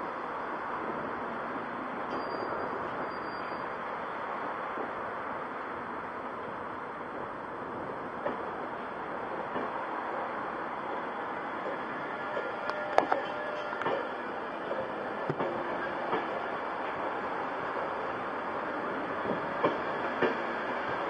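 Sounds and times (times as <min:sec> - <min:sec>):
train rolling rumble: 0:00.0 - 0:21.0
wheels clicking over rail joints: 0:08.2 - 0:09.9, 0:10.9 - 0:18.2, 0:19.0 - 0:21.0.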